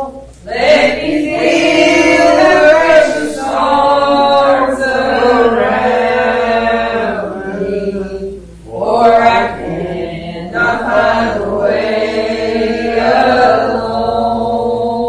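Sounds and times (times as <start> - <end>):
voices singing a hymn: 0.0 - 15.0.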